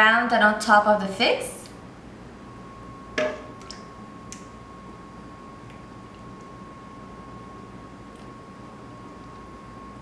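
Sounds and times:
faint high hum: 0.0 - 10.0
metal cup knocking on steel bowl: 3.2 - 3.5.

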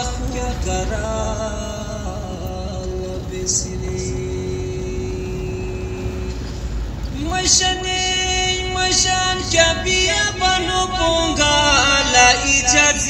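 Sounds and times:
car engine and tyre rumble: 0.0 - 13.0
song with singing: 0.0 - 13.0.

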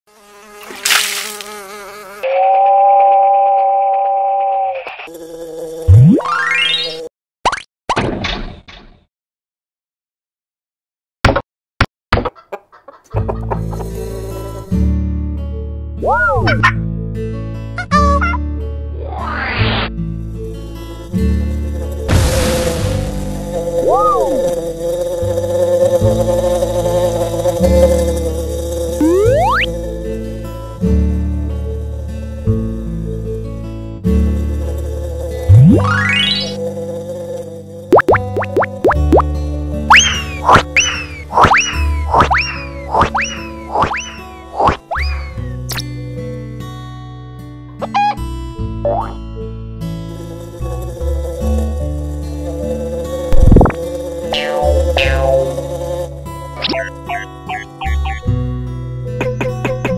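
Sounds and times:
cartoon buzzing drone: 0.1 - 2.9, 3.5 - 7.1, 21.0 - 30.2, 34.4 - 45.8, 50.1 - 58.4
rising pitch glide: 23.5 - 24.7, 29.0 - 29.8, 35.5 - 36.6, 37.9 - 39.3, 53.3 - 55.6
short blips: 29.0 - 29.7, 37.9 - 39.3, 39.9 - 45.8, 53.4 - 55.5.

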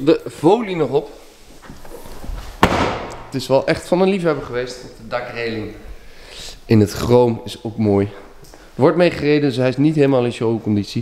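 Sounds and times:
car tailgate slamming: 2.6 - 3.3.

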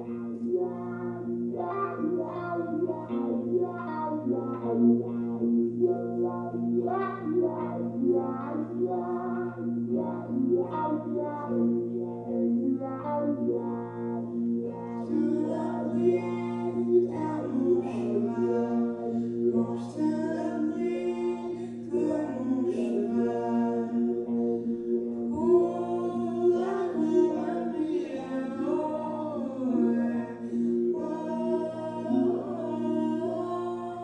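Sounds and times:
guitar plucked notes: 0.0 - 34.0
steady low tone: 0.0 - 34.0.

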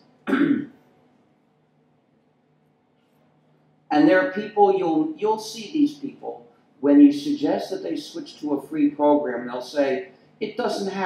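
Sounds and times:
man clearing throat: 0.2 - 0.8.

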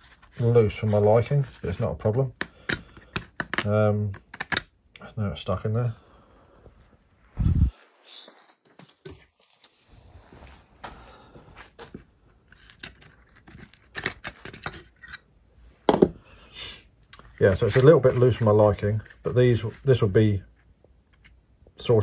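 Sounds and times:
small clicks and scrapes: 11.9 - 15.3, 17.0 - 21.4.

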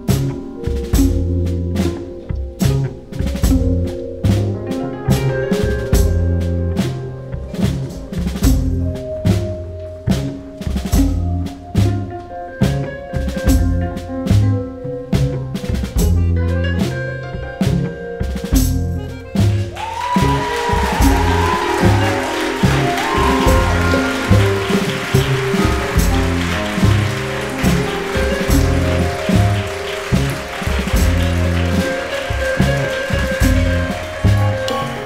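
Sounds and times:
live band instrumental: 0.0 - 35.0.

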